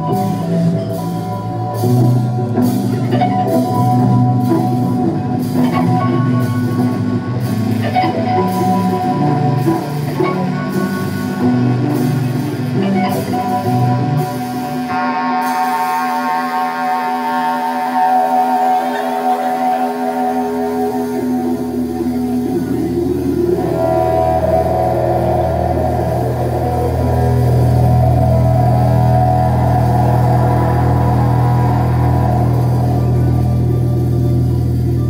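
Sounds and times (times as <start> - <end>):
deep bass: 0.0 - 35.0
droning guitar tones: 0.0 - 35.0.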